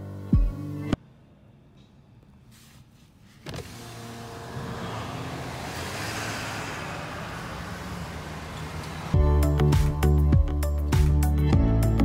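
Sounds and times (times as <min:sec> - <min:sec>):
power window motor humming: 0:03.4 - 0:05.7.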